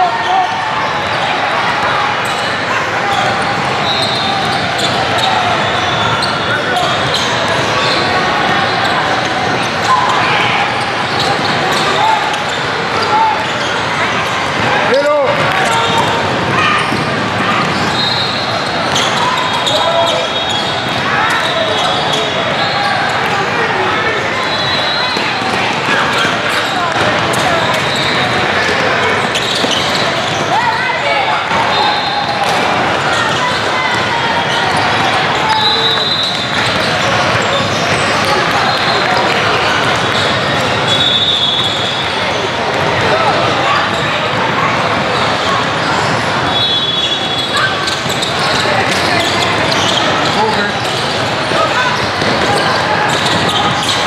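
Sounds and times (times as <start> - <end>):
people calling out: 0.0 - 54.0
sneaker squeaks: 2.2 - 23.3, 24.0 - 54.0.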